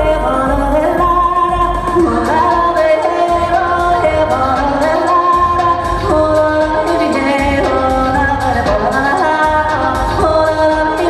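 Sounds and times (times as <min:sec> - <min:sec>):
amplified pop backing music: 0:00.0 - 0:11.0
woman singing into a microphone: 0:00.0 - 0:11.0.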